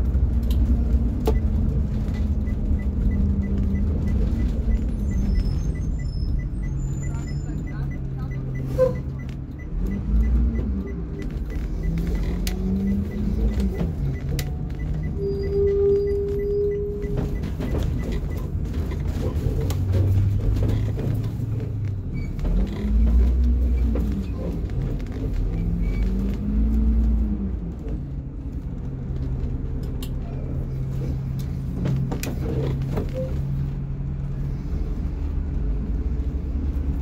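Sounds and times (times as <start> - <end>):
bus engine: 0.0 - 37.0.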